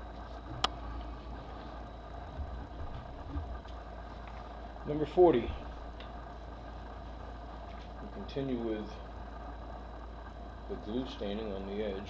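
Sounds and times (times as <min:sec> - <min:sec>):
steady low hum: 0:00.0 - 0:12.0
soft low knocks: 0:02.2 - 0:03.7.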